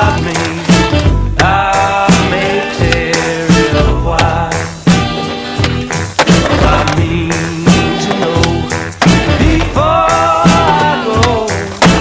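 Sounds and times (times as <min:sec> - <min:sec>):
skateboard landing on concrete: 0:05.6 - 0:07.0.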